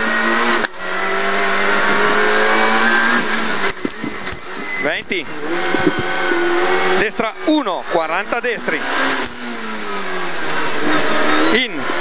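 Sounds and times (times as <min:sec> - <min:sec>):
car engine accelerating: 0:00.0 - 0:12.0
thin high whine: 0:03.6 - 0:06.6.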